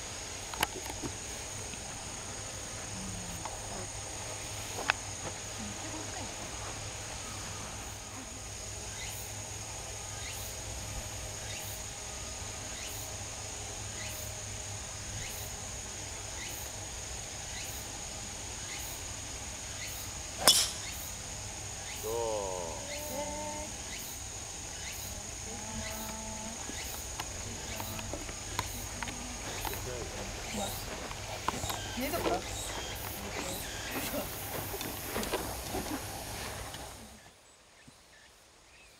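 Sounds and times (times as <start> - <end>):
insects chirring: 0.0 - 38.9
golf club hitting ball: 20.4 - 21.1.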